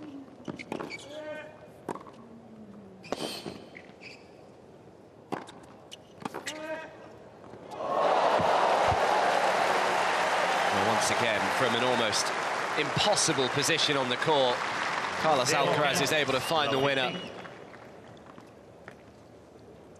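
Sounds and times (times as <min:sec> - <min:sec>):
crowd cheering and applauding: 0:07.8 - 0:17.8.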